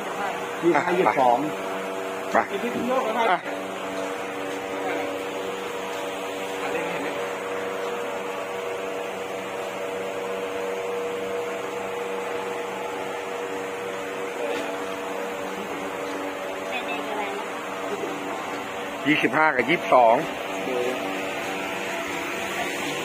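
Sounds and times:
electrical hum: 0:00.0 - 0:23.0.

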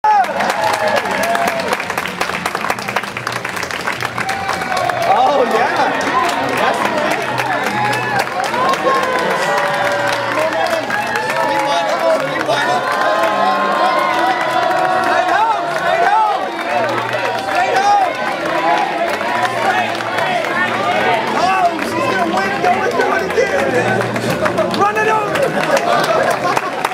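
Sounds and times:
crowd cheering and shouting: 0:00.0 - 0:02.0, 0:04.0 - 0:26.9
hand-clapping: 0:00.0 - 0:26.9.

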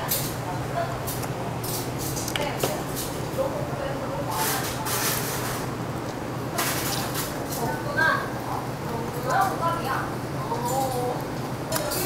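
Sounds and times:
low hum of machinery: 0:00.0 - 0:12.0.

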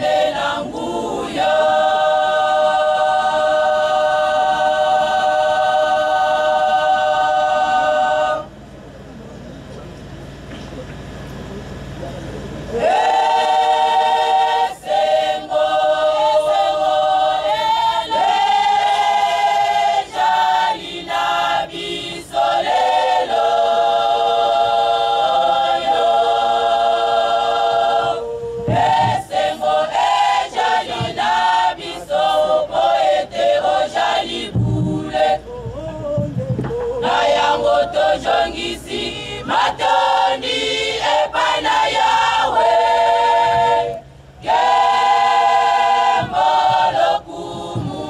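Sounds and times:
women's choir singing: 0:00.0 - 0:08.6, 0:12.8 - 0:48.0
low hum: 0:12.1 - 0:48.0.

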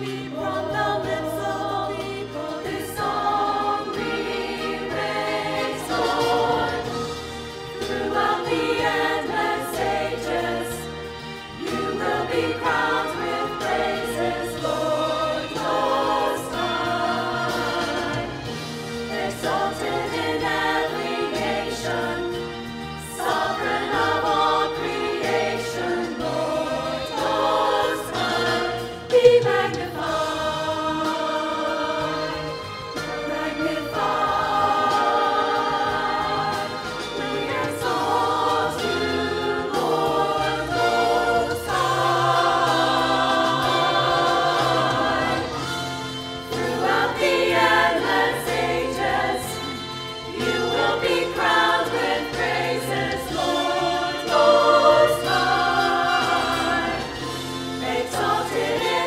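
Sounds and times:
church choir singing: 0:00.0 - 0:59.0
keyboard accompaniment: 0:00.0 - 0:59.0.

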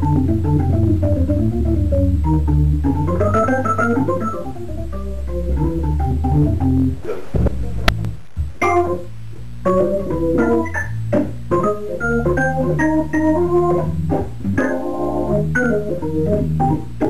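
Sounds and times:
organ melody: 0:00.0 - 0:07.0, 0:07.6 - 0:17.0
organ bass notes: 0:00.0 - 0:17.0.

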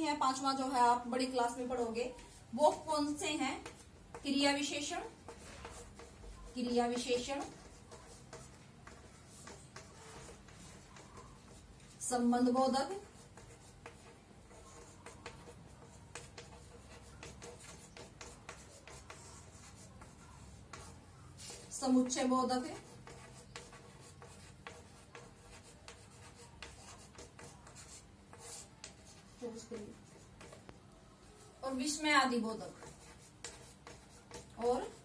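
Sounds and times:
chalk tapping on blackboard: 0:02.2 - 0:30.8, 0:31.9 - 0:35.0.

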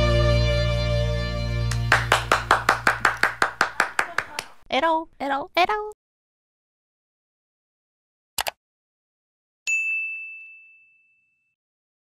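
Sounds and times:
bright ding chime: 0:09.7 - 0:11.6.

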